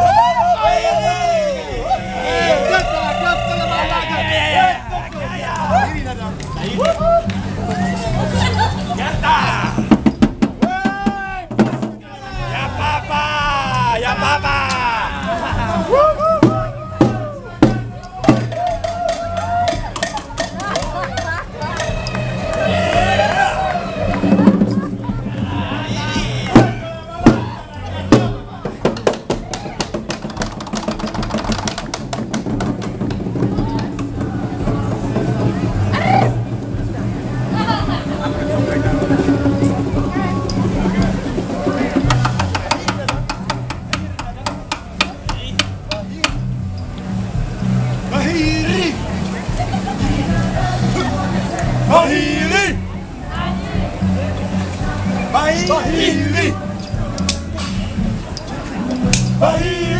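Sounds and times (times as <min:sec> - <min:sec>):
person shouting a long high note: 0:00.0 - 0:05.0
background music: 0:00.0 - 0:59.9
snare drum hits and rolls: 0:09.8 - 0:12.0, 0:26.5 - 0:36.4, 0:38.9 - 0:46.4
background voices: 0:33.3 - 0:59.9.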